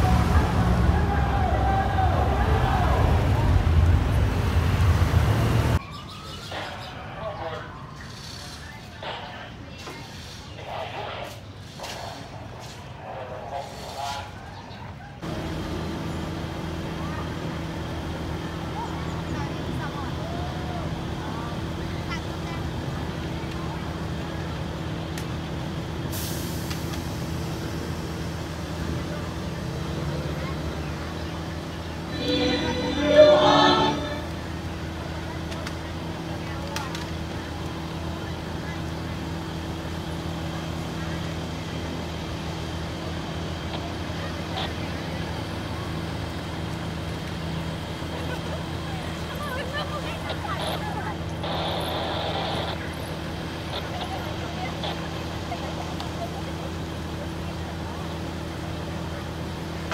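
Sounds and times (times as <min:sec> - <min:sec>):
low engine hum: 0:00.0 - 0:05.8
loud voice: 0:32.1 - 0:34.4.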